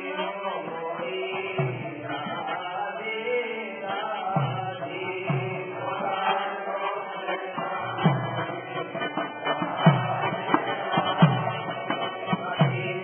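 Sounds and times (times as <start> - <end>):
devotional chanting: 0.0 - 13.0.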